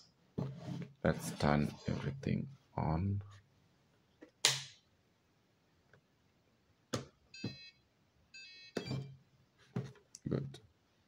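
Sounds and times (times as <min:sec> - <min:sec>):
electronic beeps: 0:07.4 - 0:07.8, 0:08.4 - 0:09.1.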